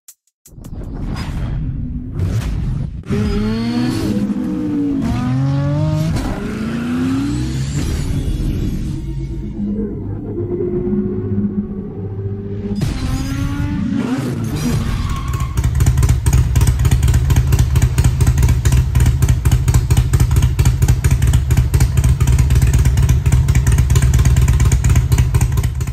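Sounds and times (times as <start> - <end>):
motorcycle engine idling: 15.6 - 25.9.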